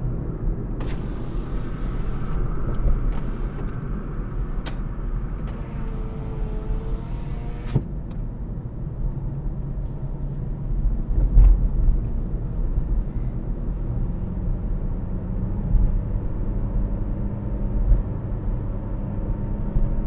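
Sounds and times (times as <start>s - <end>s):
car engine and tyre rumble: 0.0s - 20.0s.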